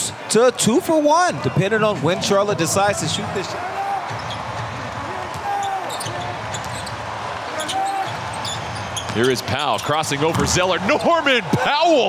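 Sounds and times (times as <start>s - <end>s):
low arena background: 0.0s - 12.0s.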